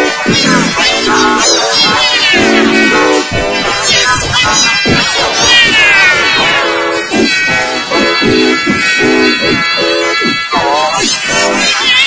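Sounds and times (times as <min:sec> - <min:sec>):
low steady tones: 0:00.0 - 0:11.8
distorted voice sliding down: 0:00.0 - 0:12.0.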